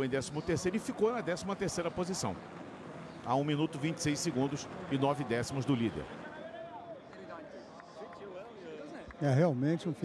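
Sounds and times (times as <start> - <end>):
crowd talking and calling out: 0.0 - 10.0.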